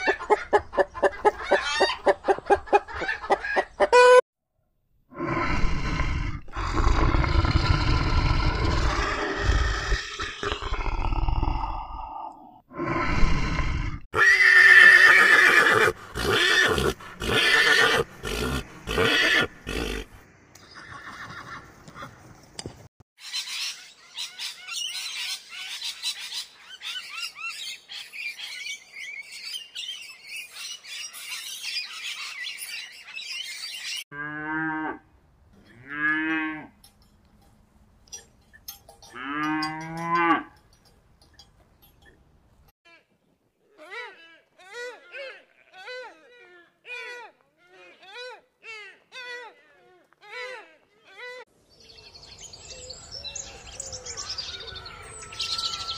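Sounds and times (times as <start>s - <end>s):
harsh animal sounds in bursts: 5.2s - 11.8s.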